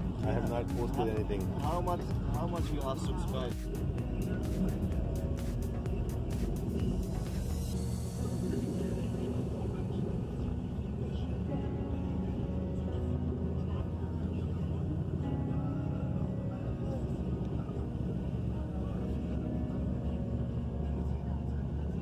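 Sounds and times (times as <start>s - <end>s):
vehicle engine and tyres droning: 0.0s - 22.0s.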